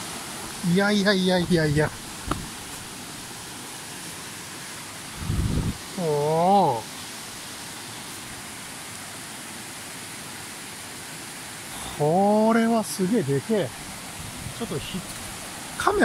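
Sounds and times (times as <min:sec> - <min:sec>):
stream running over stones: 0:00.0 - 0:16.0
low rumble on microphone: 0:05.2 - 0:05.8
man's wordless exclamation: 0:06.0 - 0:06.8.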